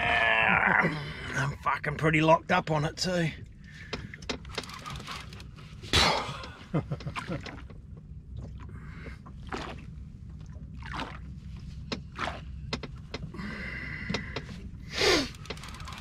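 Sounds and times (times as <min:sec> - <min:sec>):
wind and water against hull: 0:00.0 - 0:16.0
fishing reel knocks and clicks: 0:04.3 - 0:05.5, 0:15.2 - 0:16.0
strained exhale: 0:13.4 - 0:15.4.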